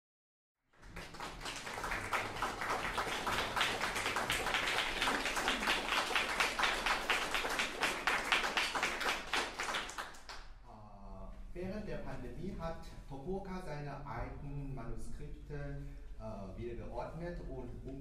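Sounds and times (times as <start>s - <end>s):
audience applauding: 0.8s - 10.5s.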